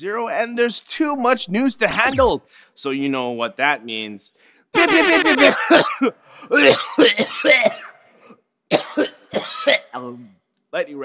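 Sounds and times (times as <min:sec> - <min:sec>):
man clearing his throat: 0:04.8 - 0:08.1, 0:08.7 - 0:10.0
man coughing: 0:04.8 - 0:08.1, 0:08.7 - 0:09.9.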